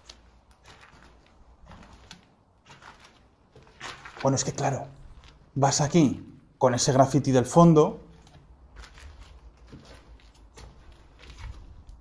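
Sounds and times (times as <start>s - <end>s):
faint footsteps: 0.0s - 5.6s, 8.0s - 12.0s.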